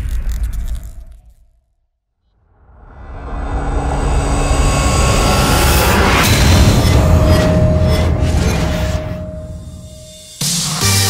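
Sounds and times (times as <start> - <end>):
dense rushing rumble riser: 2.4 - 8.4.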